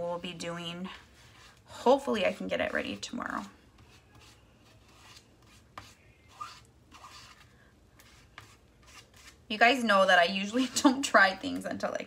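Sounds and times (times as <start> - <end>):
squeegee scraping on stencil: 0.0 - 9.5.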